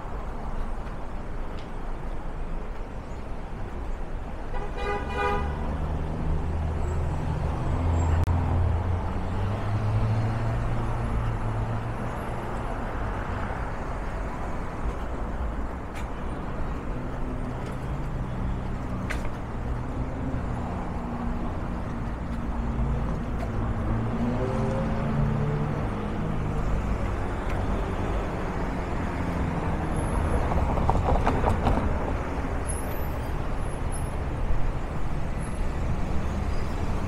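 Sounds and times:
car horn toot: 0:04.6 - 0:05.5.

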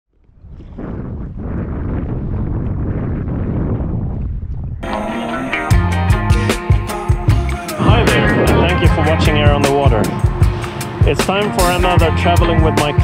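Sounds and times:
wind buffeting microphone: 0:00.1 - 0:04.8, 0:07.7 - 0:13.0
music with a beat: 0:04.8 - 0:13.0.

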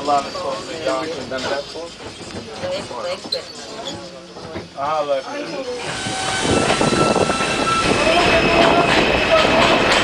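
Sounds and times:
train wheel and rail noise: 0:00.0 - 0:10.0.

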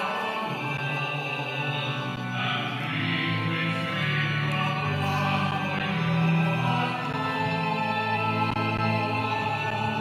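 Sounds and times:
musical accompaniment: 0:00.0 - 0:10.0
people singing a hymn: 0:00.0 - 0:10.0.

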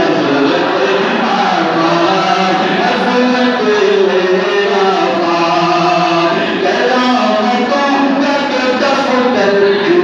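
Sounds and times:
man chanting over loudspeakers: 0:00.0 - 0:10.0.

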